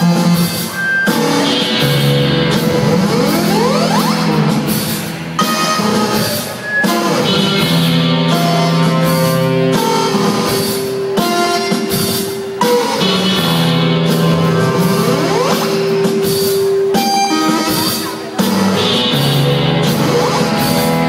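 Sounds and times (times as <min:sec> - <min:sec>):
drums: 0:00.0 - 0:21.0
electric guitar: 0:00.0 - 0:21.0
rock band playing live: 0:00.0 - 0:21.0
rising pitch glide: 0:01.4 - 0:07.7.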